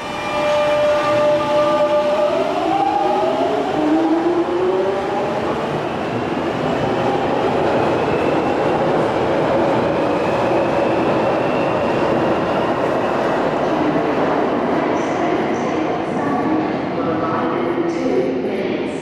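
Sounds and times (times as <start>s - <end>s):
rumble of wheels on rail: 0.0s - 19.0s.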